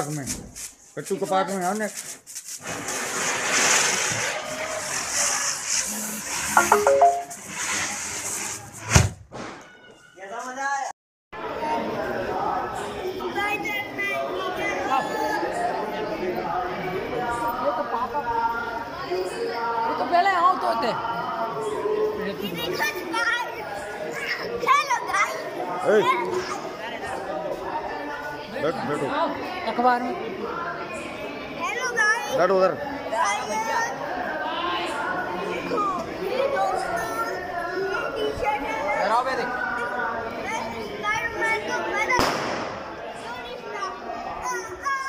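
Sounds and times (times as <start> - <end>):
crowd chatter: 3.9 - 8.1, 11.4 - 45.0
firecracker bang: 42.2 - 43.0.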